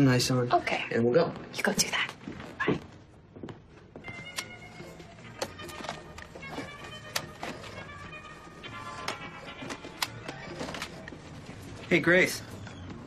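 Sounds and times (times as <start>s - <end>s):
film background music: 0.0s - 13.0s.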